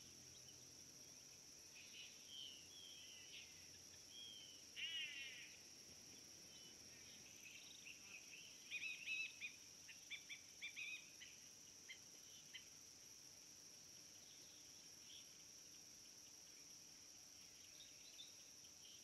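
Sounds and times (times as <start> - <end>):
faint bird calls: 1.8 - 5.6, 6.5 - 12.7
bird chirps: 6.5 - 12.7.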